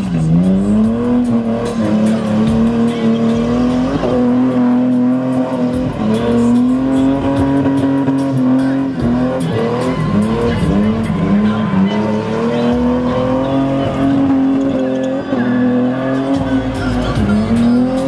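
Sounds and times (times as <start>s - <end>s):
car engine revving high: 0.0s - 18.0s
tyres spinning and squealing: 0.0s - 18.0s.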